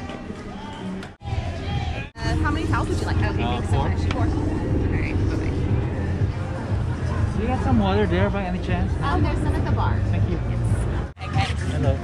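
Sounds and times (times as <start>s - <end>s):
steady low rumble: 2.1s - 11.2s
voices talking: 2.2s - 12.0s.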